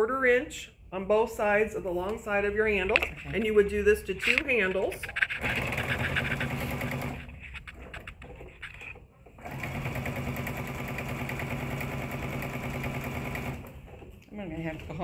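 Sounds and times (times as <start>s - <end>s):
electric sewing machine stitching: 5.3s - 7.4s, 9.4s - 13.8s.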